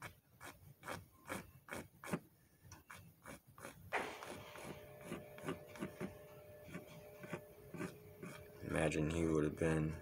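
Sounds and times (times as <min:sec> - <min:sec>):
pencil scratching on paper: 0:00.0 - 0:08.8
faint steady hum: 0:04.0 - 0:10.0.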